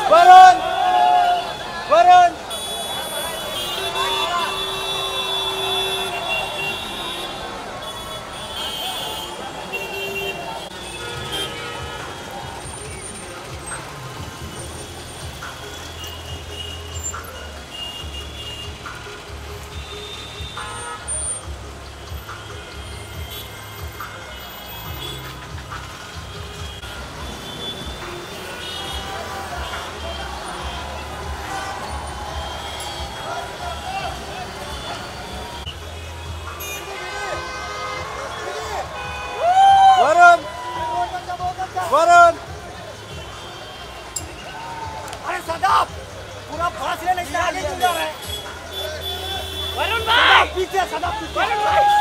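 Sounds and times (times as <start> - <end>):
crowd voices: 0.0 - 52.0
music playing: 0.0 - 52.0
traffic: 0.0 - 52.0
vehicle horn toots: 2.4 - 12.8, 15.4 - 21.5, 26.3 - 39.4, 47.7 - 52.0.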